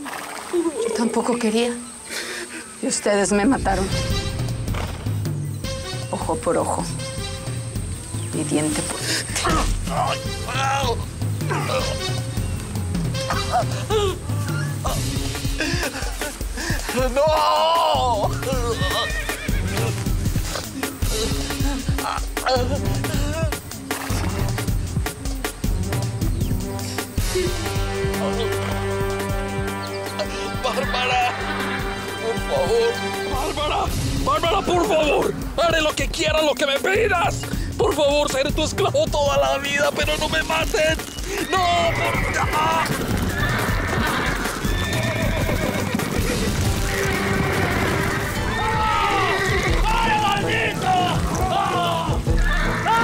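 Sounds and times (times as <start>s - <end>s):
dramatic music with low pulse: 3.3s - 41.4s, 42.0s - 53.0s
horses whinnying: 9.3s - 12.4s, 13.1s - 24.7s, 40.7s - 53.0s
hoofbeats: 18.0s - 30.8s, 39.9s - 53.0s.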